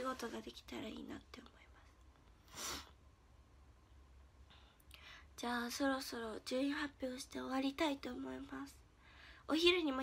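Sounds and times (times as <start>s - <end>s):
woman whispering softly: 0.0s - 2.1s.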